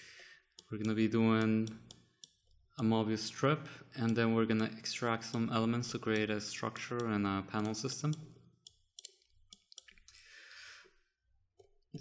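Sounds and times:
person speaking: 0:00.6 - 0:02.0, 0:02.8 - 0:08.4
computer mouse clicks: 0:00.6 - 0:02.4, 0:05.2 - 0:10.2.

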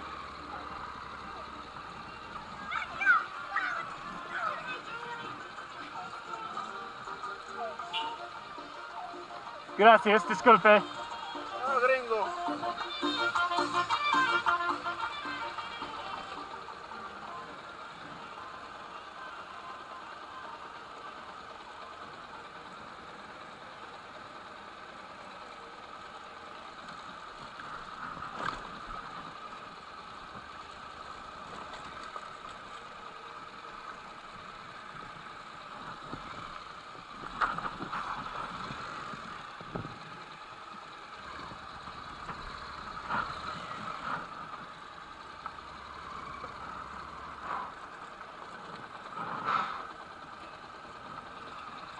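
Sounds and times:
motorcycle engine running: 0:00.0 - 0:51.9.

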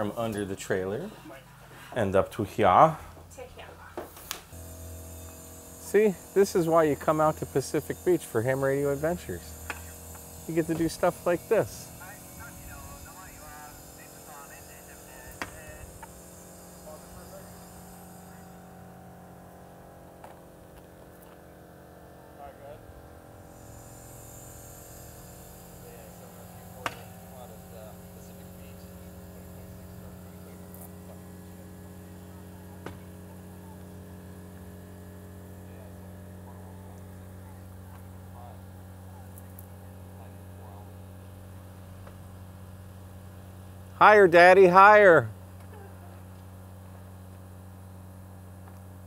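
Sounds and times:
air pump humming: 0:00.0 - 0:22.0, 0:22.9 - 0:49.0.

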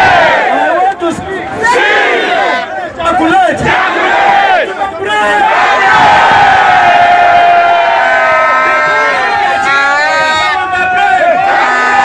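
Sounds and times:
crowd of protesters shouting: 0:00.0 - 0:12.0.

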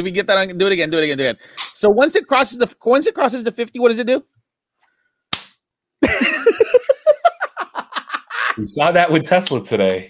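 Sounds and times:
sharp smack: 0:05.3 - 0:05.6
men laughing: 0:06.0 - 0:08.7.

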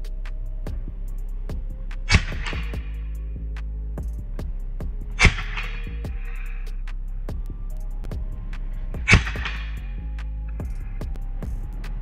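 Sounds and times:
music with low beat: 0:00.0 - 0:12.0
air rifle shots: 0:02.0 - 0:02.9, 0:05.2 - 0:06.2, 0:09.0 - 0:09.9.

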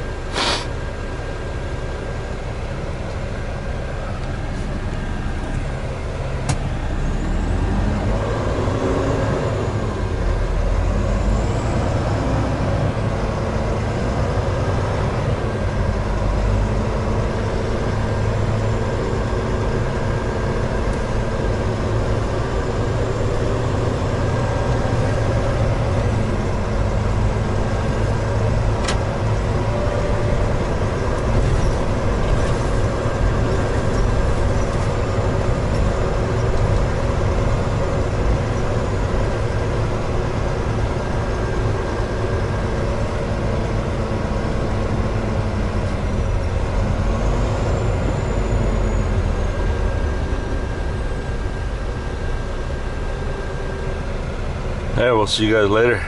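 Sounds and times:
diesel truck engine driving: 0:00.0 - 0:56.0.

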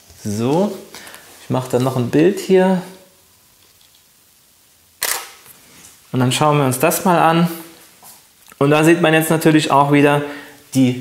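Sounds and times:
camera shutter click: 0:05.0 - 0:05.4.

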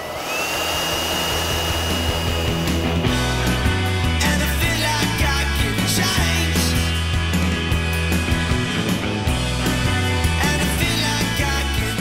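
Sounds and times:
blower whining: 0:00.0 - 0:12.0
background rock music: 0:00.9 - 0:12.0.

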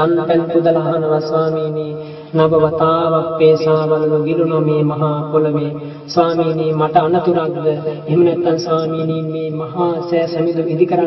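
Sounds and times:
person chanting in monotone: 0:00.0 - 0:11.0.

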